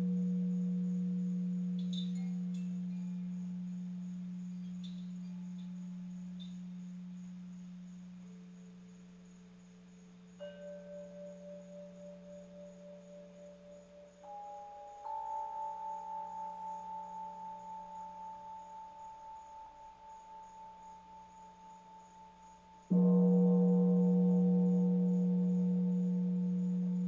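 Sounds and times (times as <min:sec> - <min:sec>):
light chime tinkles: 0:00.0 - 0:08.0, 0:10.3 - 0:27.0
singing bowl tone: 0:00.0 - 0:09.4, 0:10.3 - 0:27.0.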